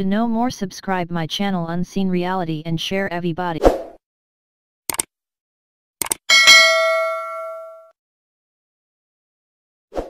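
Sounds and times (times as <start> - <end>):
bell ding: 6.3 - 7.9.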